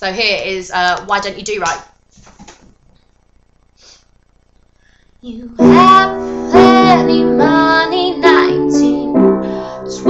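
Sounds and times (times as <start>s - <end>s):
sharp intake of breath: 3.8s - 4.2s.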